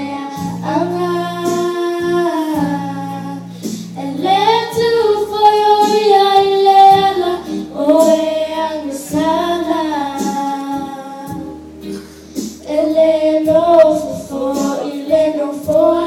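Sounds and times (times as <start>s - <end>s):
girls singing into microphones: 0.0s - 16.0s.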